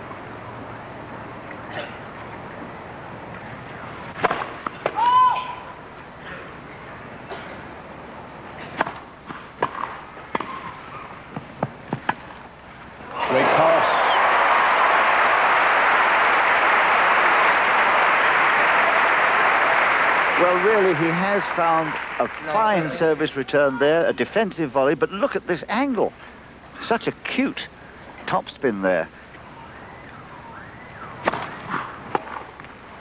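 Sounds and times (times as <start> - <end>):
racket hitting tennis ball: 4.1 - 5.0, 8.6 - 12.2, 31.2 - 32.6
crowd applause: 13.1 - 23.5.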